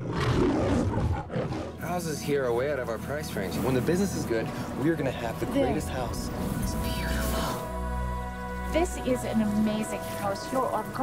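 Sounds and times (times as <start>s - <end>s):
lion roaring: 0.0s - 1.8s.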